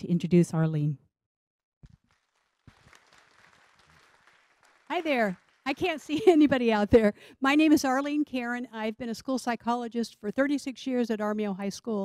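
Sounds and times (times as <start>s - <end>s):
faint applause: 1.8s - 5.8s.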